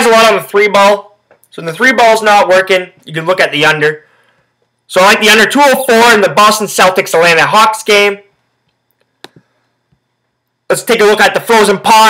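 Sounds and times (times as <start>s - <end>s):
man speaking: 0.0s - 4.0s, 4.9s - 8.3s, 10.7s - 12.0s.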